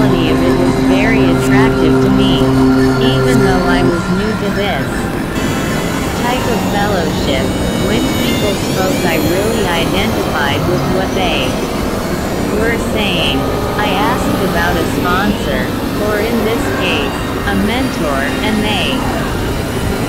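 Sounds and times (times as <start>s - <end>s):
synthesizer drone: 0.0s - 20.0s
warbling gliding electronic tones: 0.0s - 20.0s.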